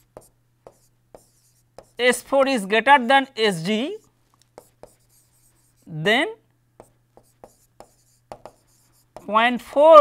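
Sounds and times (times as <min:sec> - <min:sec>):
stylus tapping on tablet screen: 0:06.8 - 0:09.3.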